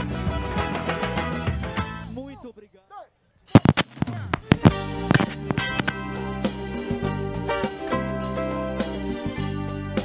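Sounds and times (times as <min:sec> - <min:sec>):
band music: 0:03.5 - 0:10.0.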